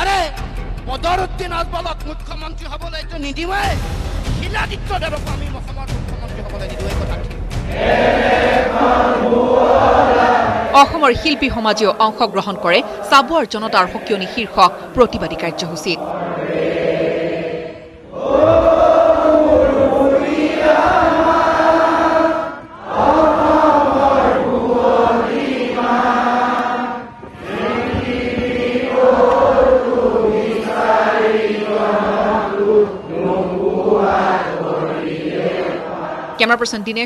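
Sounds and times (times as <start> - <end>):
crowd singing in unison: 6.9 - 36.7.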